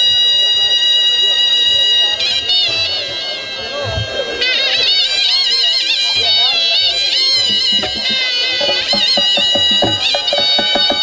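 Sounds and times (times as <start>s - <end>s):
shrill folk pipes melody: 7.0s - 11.0s
drum beating: 7.4s - 11.0s.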